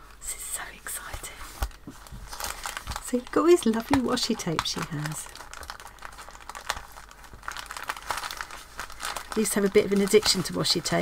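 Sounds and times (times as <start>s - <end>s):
paper bag crinkling: 1.6s - 11.0s.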